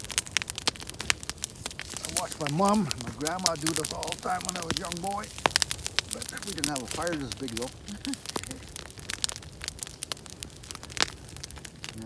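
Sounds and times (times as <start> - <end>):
wood fire crackling and popping: 0.0 - 12.0.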